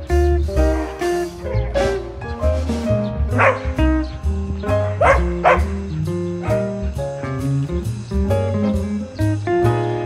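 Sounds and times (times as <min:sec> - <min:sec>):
guitar music: 0:00.0 - 0:10.0
dog barking: 0:03.3 - 0:03.7, 0:05.0 - 0:05.7.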